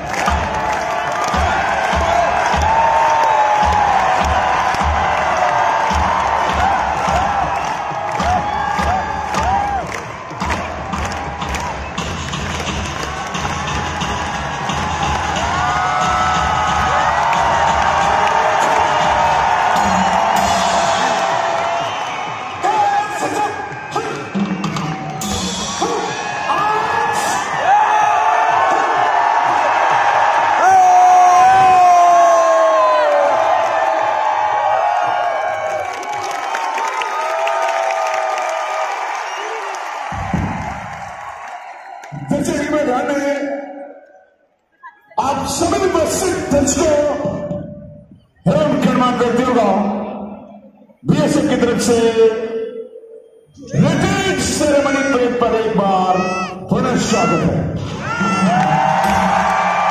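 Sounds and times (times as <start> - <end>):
sharp claps: 0.0 - 15.5
crowd cheering and shouting: 0.0 - 52.4, 53.6 - 59.9
music from loudspeakers: 5.8 - 22.6, 23.6 - 26.4
long drawn-out shouts: 55.9 - 59.9.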